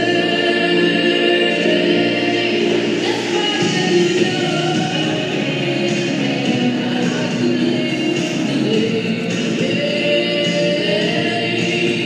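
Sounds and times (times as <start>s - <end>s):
choir singing held notes: 0.0s - 12.0s
musical backing: 0.0s - 12.0s.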